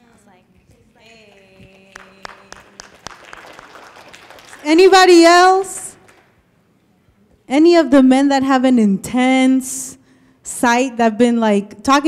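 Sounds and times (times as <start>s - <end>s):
audience clapping: 1.2s - 6.4s.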